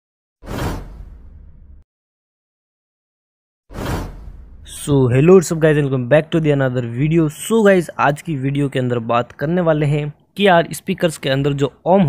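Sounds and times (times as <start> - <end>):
whoosh swish: 3.7 - 4.7
low rumble: 4.1 - 4.9.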